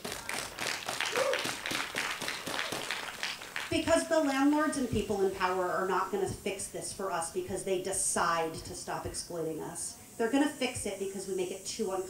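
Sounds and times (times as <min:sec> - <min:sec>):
short cheer: 0:00.0 - 0:03.6
audience clapping: 0:00.0 - 0:04.0.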